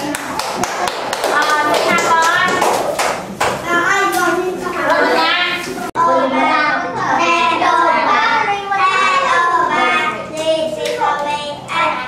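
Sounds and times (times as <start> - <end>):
sharp hand claps: 0.0 - 3.6
voices: 0.0 - 12.0.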